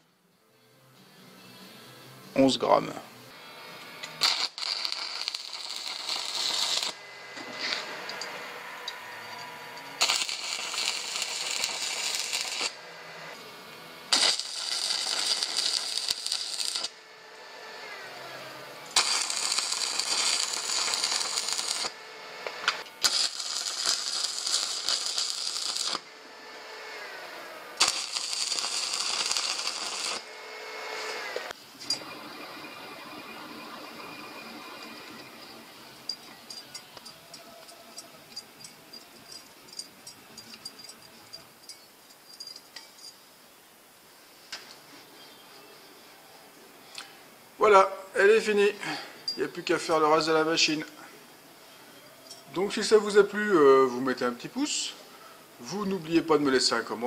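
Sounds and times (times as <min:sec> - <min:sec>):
power tool on metal: 0:03.6 - 0:32.8.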